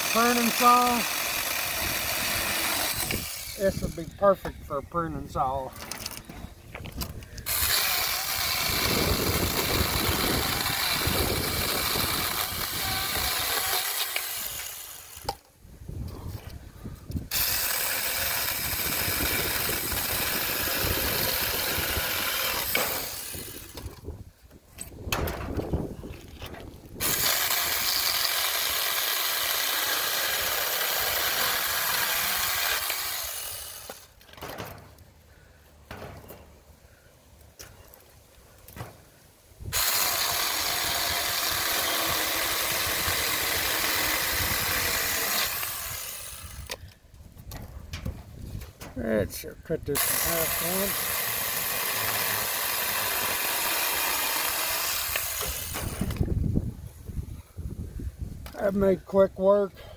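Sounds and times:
electric chainsaw cutting branches: 0.0s - 4.2s, 7.4s - 15.4s, 17.3s - 24.0s, 27.0s - 34.2s, 39.7s - 46.8s, 50.0s - 56.5s.

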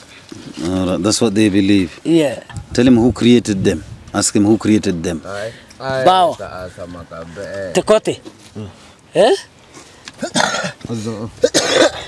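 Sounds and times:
men talking: 0.4s - 9.5s, 10.3s - 11.7s
person coughing: 10.2s - 10.8s, 11.4s - 12.0s.

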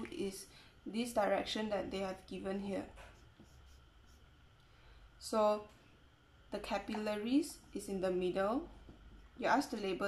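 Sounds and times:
marker drawing on surface: 3.0s - 4.4s.

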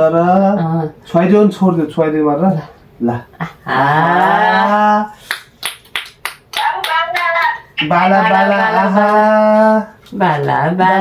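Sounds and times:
person singing syllables: 3.7s - 5.2s
hand claps: 5.2s - 8.0s, 8.9s - 10.6s.

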